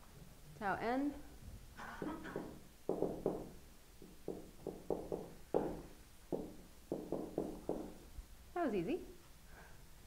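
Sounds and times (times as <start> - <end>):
marker tip knocking on whiteboard: 2.0 - 8.0.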